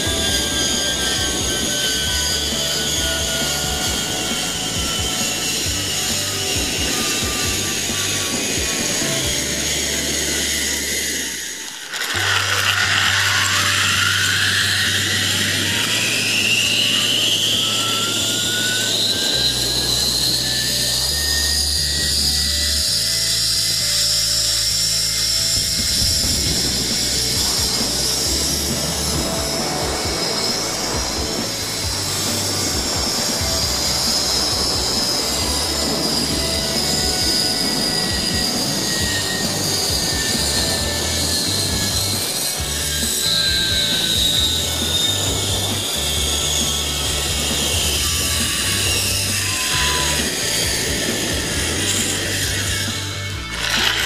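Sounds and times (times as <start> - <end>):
pulley wheels whining on cable: 0.0 - 54.0
wind noise: 0.0 - 54.0.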